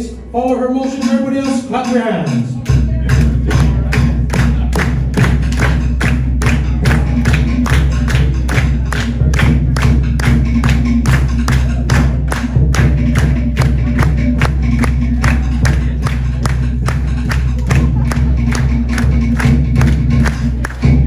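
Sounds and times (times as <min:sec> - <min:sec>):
drum ensemble dance beat: 0:00.4 - 0:21.0.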